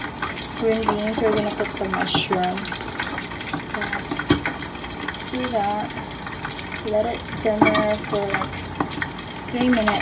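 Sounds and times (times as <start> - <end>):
pot of water simmering: 0.0 - 10.0.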